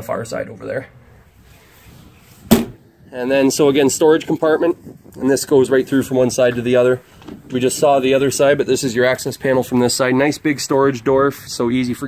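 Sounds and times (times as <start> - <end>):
compartment door slamming shut: 2.5 - 2.8.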